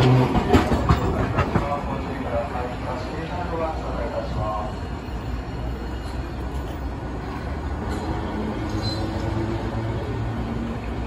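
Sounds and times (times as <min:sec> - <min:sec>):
tram wheels rumbling on rail: 0:00.0 - 0:11.0
high wheel squeal: 0:07.9 - 0:09.4.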